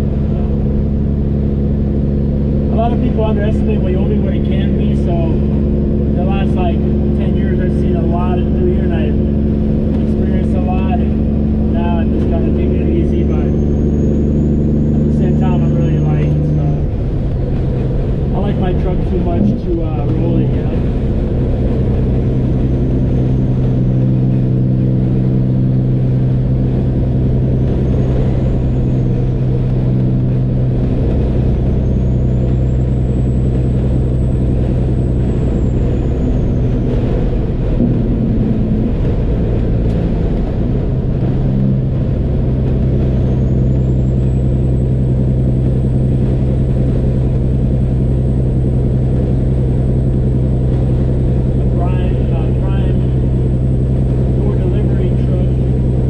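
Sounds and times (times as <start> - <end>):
road noise: 0.0 - 56.0
truck diesel engine droning: 0.0 - 56.0.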